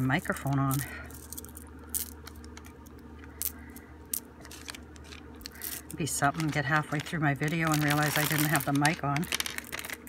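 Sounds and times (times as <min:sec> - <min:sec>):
low steady hum: 0:00.0 - 0:10.0
beads clicking: 0:00.4 - 0:10.0.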